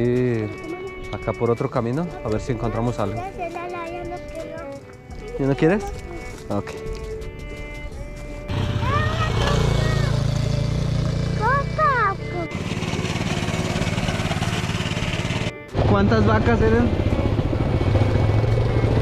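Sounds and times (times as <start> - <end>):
background music: 0.0 - 19.0
small motorcycle engine running: 0.0 - 19.0.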